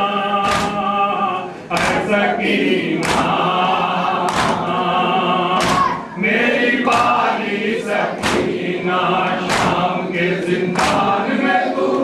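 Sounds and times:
men chanting a lament in chorus: 0:00.0 - 0:12.0
hands beating on chests: 0:04.3 - 0:04.6, 0:05.6 - 0:06.0, 0:08.2 - 0:08.6, 0:09.4 - 0:09.8.

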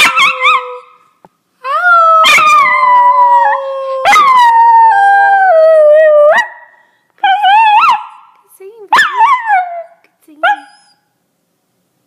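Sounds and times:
dog howling: 0:01.8 - 0:06.5.

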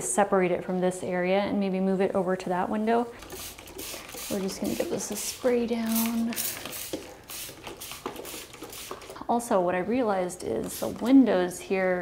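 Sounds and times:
spray bottle squirting: 0:03.1 - 0:09.2, 0:10.6 - 0:11.1.

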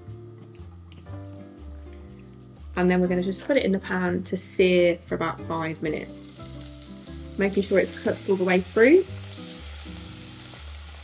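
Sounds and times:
chicken sizzling in a pan: 0:05.8 - 0:11.0.

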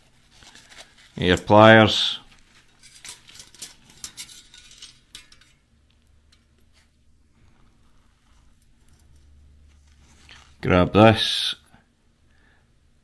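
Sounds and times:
metallic clicks and clinks: 0:02.7 - 0:05.6.

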